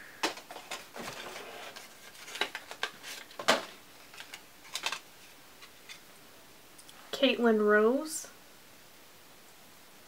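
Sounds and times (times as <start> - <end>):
small plastic pans clicking: 0.2 - 5.0.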